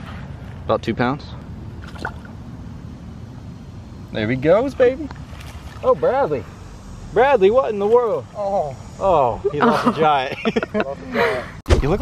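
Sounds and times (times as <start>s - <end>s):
fish splashing into water: 1.8s - 2.3s.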